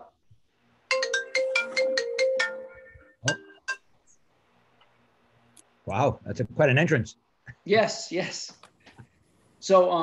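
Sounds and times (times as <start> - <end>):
melodic phone ringtone: 0.9 - 3.7.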